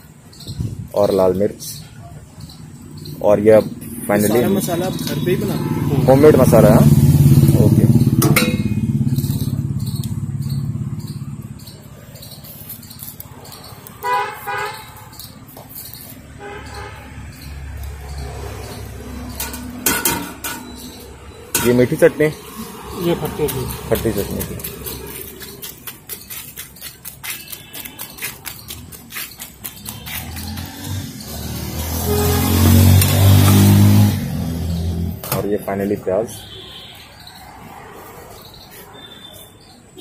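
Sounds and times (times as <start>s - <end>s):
low traffic hum: 0.0s - 40.0s
vehicle engine passing by: 2.4s - 14.0s, 16.2s - 26.7s, 28.3s - 36.0s
vehicle horn honking: 4.5s - 6.6s, 14.0s - 15.2s, 16.4s - 17.3s, 31.8s - 34.2s, 36.3s - 37.1s.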